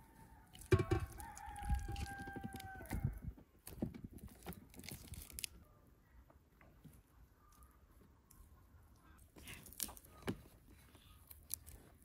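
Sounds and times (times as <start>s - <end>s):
rooster crowing: 0.0s - 3.2s
meat knocking in metal pot: 0.6s - 2.4s.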